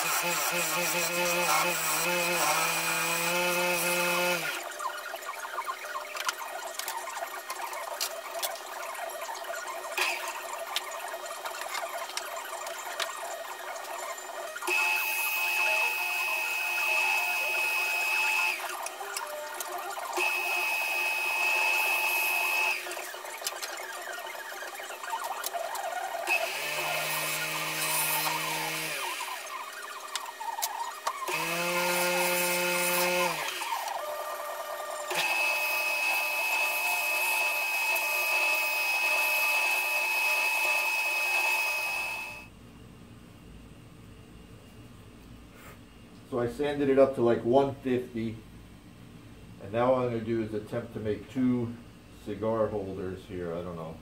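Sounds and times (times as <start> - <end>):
turning tool scraping wood: 0.0 - 4.6
wood lathe running: 0.0 - 4.8, 5.7 - 42.5.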